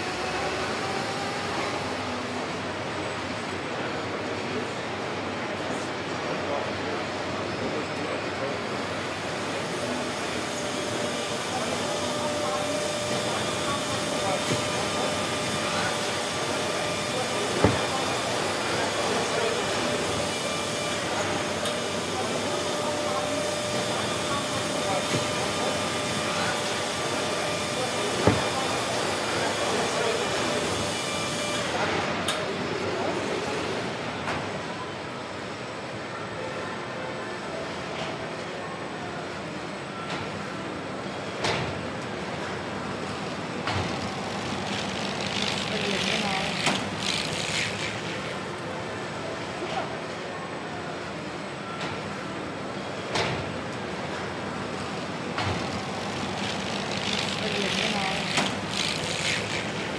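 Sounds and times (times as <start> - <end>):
faint machine whines: 5.6 - 59.9.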